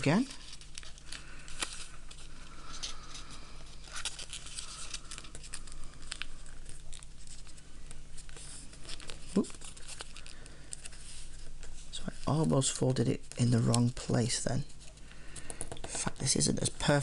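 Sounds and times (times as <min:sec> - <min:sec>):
paper rustling and crinkling: 0:00.0 - 0:15.0.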